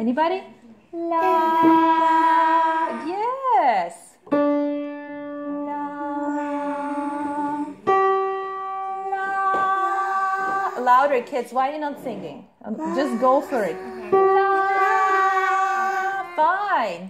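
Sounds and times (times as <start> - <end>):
piano notes: 4.3 - 11.2, 12.8 - 16.7
long sung notes: 5.4 - 10.5.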